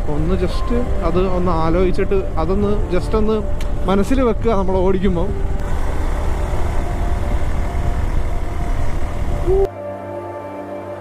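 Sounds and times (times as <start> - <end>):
motorcycle engine roar: 0.0 - 9.7
wind rushing: 0.0 - 9.7
soft music with held tones: 0.0 - 11.0.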